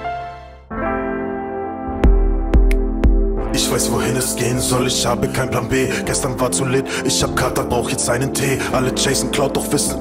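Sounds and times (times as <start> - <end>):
keyboard music: 0.0 - 10.0.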